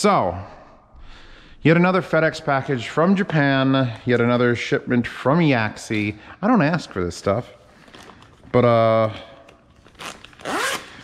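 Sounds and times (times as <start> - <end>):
envelope tear strip ripping: 9.8 - 11.0.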